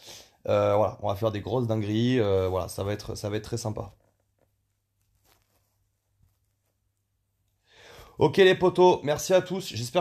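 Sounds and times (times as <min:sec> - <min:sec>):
soft noise: 0:01.2 - 0:07.6.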